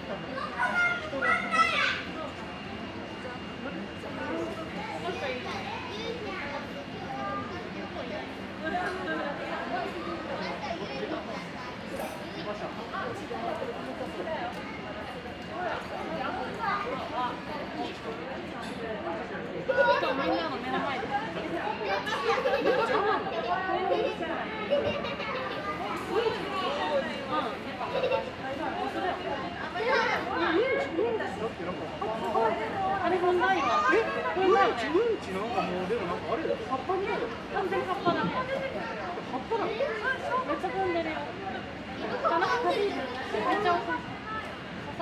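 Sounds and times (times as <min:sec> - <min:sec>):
background chatter: 0:00.0 - 0:45.0
hubbub of overlapping voices: 0:00.0 - 0:45.0.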